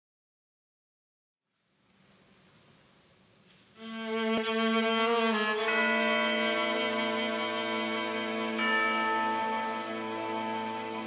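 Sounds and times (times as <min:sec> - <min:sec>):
faint hall hush: 0:01.5 - 0:11.0
orchestra strings holding chord: 0:03.8 - 0:11.0.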